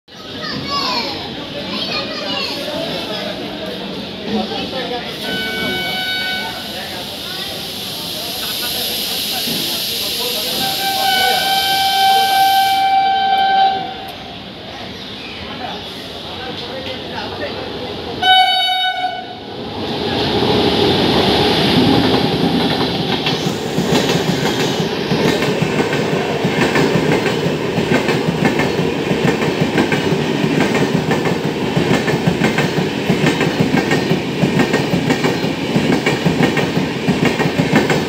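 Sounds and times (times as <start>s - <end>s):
children and people chattering: 0.1s - 38.0s
train rumbling: 0.2s - 38.0s
train horn blast: 5.2s - 6.7s, 10.6s - 14.1s, 18.2s - 19.4s.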